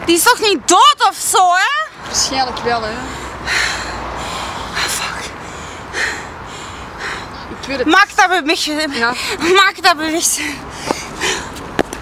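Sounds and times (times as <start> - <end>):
person breathing sharply: 3.0 - 7.5, 10.4 - 11.7.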